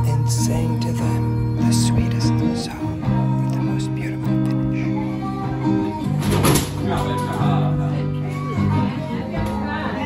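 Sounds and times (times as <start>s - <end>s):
acoustic guitar: 0.0s - 10.0s
harmonica: 0.0s - 10.0s.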